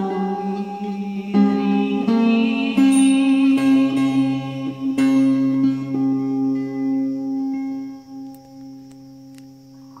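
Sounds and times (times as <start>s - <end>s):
mandolin chord ringing: 0.0s - 9.4s.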